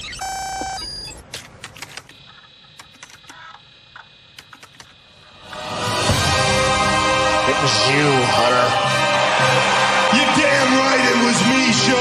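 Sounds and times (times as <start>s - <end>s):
electronic beep: 0.0s - 1.2s
music: 5.3s - 12.0s.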